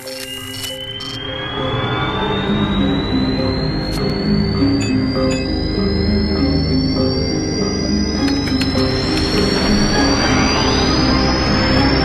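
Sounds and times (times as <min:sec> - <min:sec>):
dramatic film score: 0:00.0 - 0:12.0
thin whine rising in pitch: 0:00.0 - 0:12.0
low rumble: 0:01.2 - 0:12.0.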